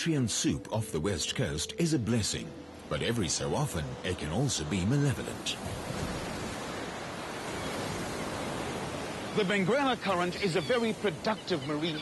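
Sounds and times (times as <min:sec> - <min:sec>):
ocean surf rushing: 0:01.9 - 0:12.0.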